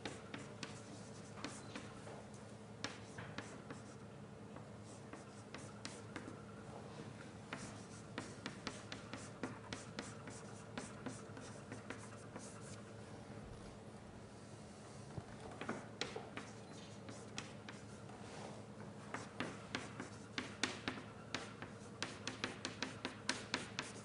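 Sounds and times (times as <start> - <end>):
chalk tapping and scratching: 0.0 - 2.2, 2.8 - 4.0, 4.8 - 6.4, 7.5 - 12.9, 15.5 - 24.0
low room hum: 0.0 - 24.0.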